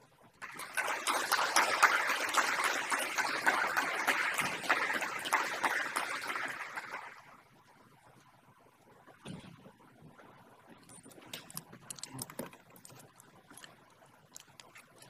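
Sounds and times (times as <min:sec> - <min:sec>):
audience applause: 0:00.4 - 0:07.4.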